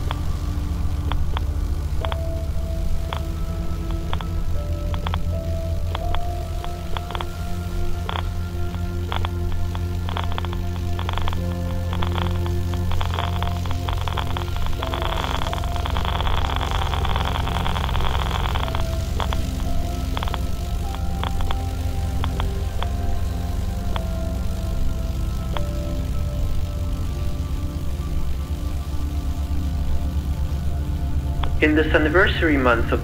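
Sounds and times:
deep steady drone: 0.0 - 33.0
dense crackling: 0.0 - 33.0.

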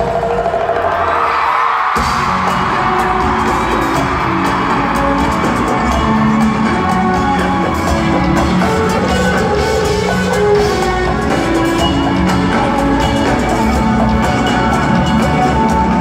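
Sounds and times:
crowd screaming: 0.0 - 16.0
live band playing: 0.0 - 16.0.

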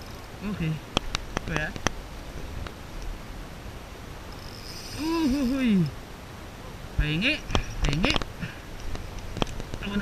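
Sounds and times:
wind and sea hiss: 0.0 - 10.0
fishing reel clicks: 4.4 - 5.4.

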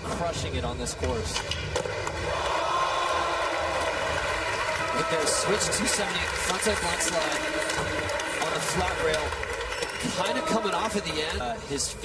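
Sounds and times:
arena crowd noise: 1.8 - 12.0.

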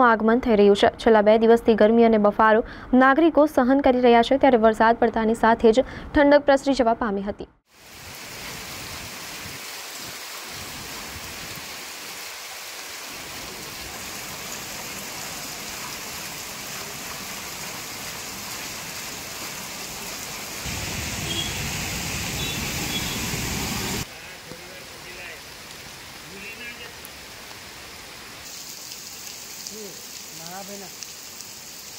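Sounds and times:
heavy rain hissing: 7.7 - 31.9.

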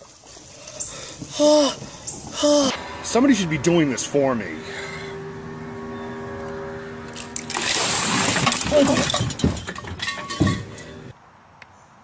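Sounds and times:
person crying out: 1.3 - 1.8, 2.4 - 2.8
ice water splashing from a pot: 7.4 - 10.2
ice clinking: 7.4 - 11.0.

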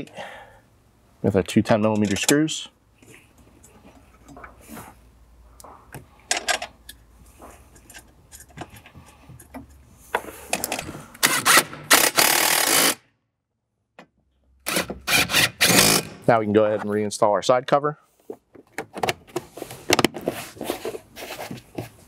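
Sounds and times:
cordless drill driving screws: 11.2 - 13.0, 14.7 - 16.1.

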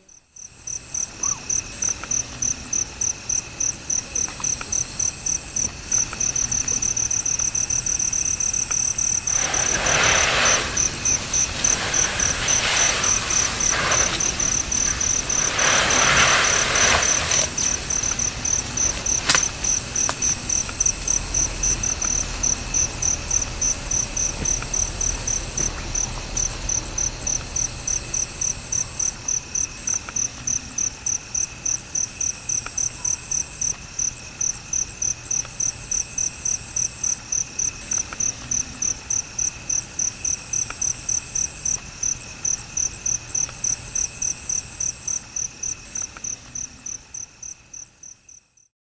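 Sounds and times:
faint insect calls: 0.0 - 48.7
insect chirping: 0.0 - 48.7.

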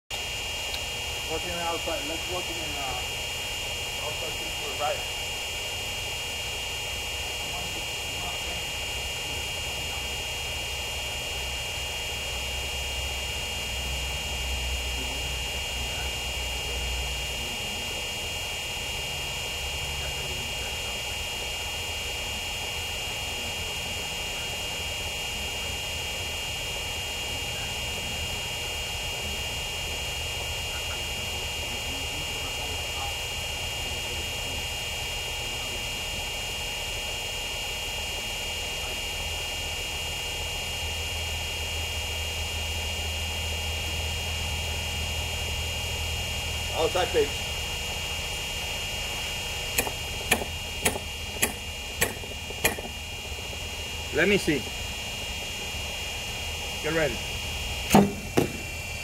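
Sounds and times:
high-pitched whine: 0.1 - 59.0.

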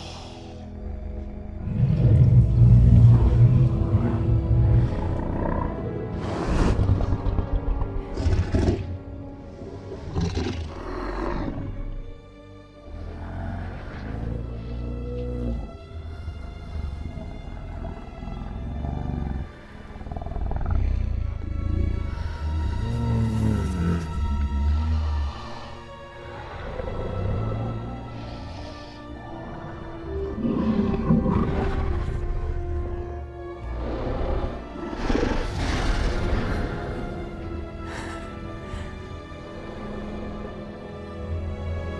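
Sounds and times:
deep breathy creature rumbles: 0.0 - 41.9
orchestral film music: 0.0 - 41.9.

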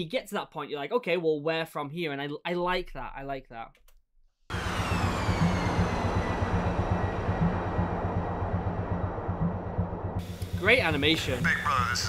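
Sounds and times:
jet engine rushing: 4.5 - 11.9
faint high whine: 4.5 - 12.0
pulsing low rumble: 4.5 - 12.0.

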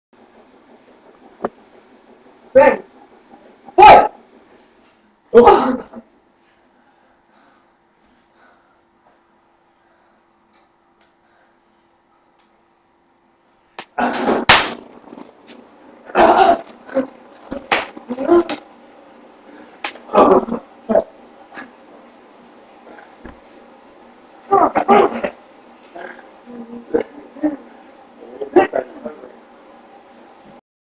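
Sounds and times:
people growling grunts: 5.4 - 6.0, 14.0 - 14.4, 16.1 - 18.6, 20.1 - 21.7, 24.5 - 29.2
sharp slaps or knocks: 13.8 - 14.9, 17.6 - 18.6, 19.8 - 20.0.

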